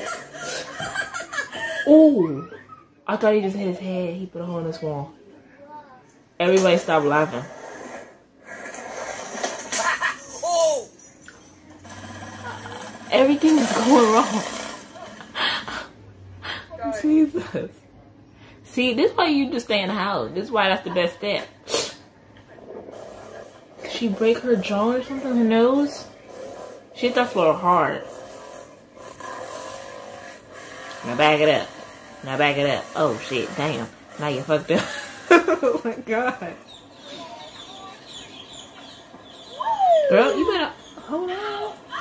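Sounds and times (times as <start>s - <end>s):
faint low mechanical hum: 0.0s - 42.0s
quad bike engine revving: 11.8s - 15.2s.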